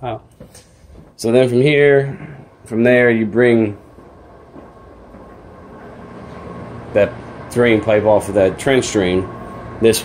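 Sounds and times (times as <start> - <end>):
hvac blower humming: 0.0 - 10.0.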